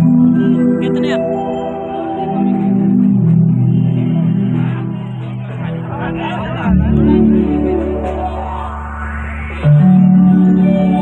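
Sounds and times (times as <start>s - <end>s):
band music with held notes: 0.0s - 11.0s.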